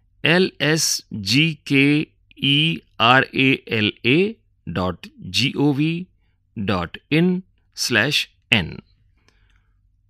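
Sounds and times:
narrator speaking: 0.2s - 9.0s.

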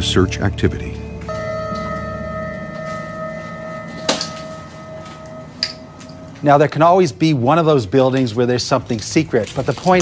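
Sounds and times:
suspense music drone: 0.0s - 7.6s
sharp hit: 1.3s - 6.9s.

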